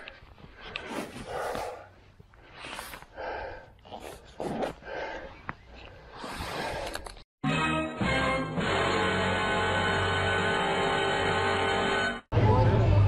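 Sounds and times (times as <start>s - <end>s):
rider breathing hard: 0.0s - 7.2s.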